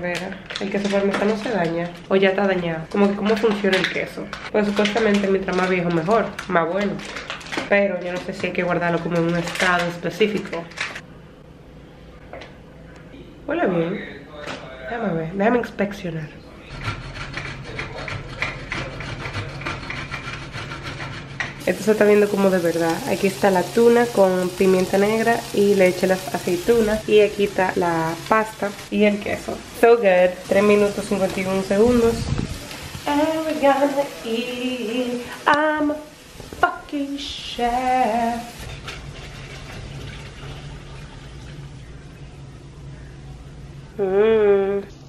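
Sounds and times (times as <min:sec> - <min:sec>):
cheese rasping on grater: 0:16.7 - 0:21.5
water pouring into colander: 0:38.7 - 0:41.7.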